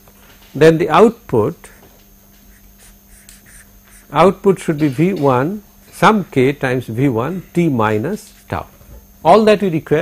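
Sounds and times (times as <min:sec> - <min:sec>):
low room hum: 0:00.0 - 0:10.0
handwriting scratching: 0:02.5 - 0:04.2.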